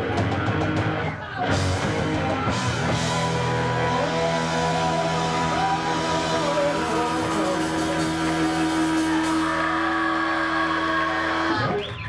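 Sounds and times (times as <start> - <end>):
bass guitar chord: 0.0 - 11.4
distorted electric guitars: 0.0 - 12.0.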